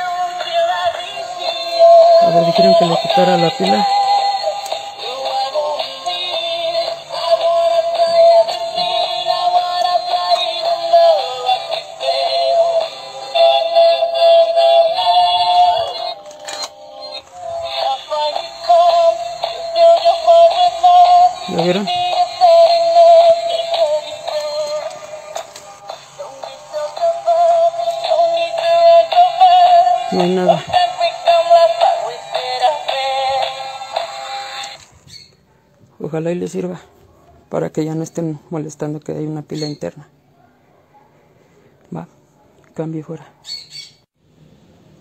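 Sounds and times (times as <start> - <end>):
synthetic singing voice: 0.0 - 16.2, 17.3 - 34.8.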